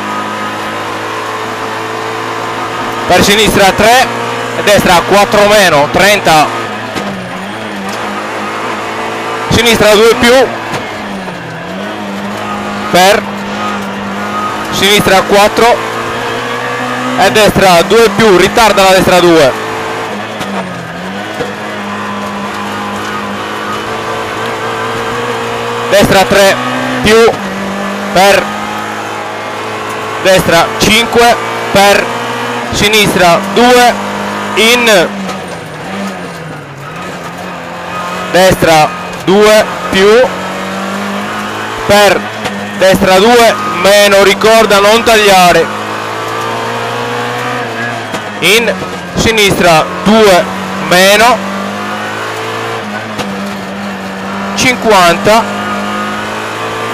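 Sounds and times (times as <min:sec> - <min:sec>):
rally car engine running: 0:00.0 - 0:56.9
road and cabin noise: 0:00.0 - 0:56.9.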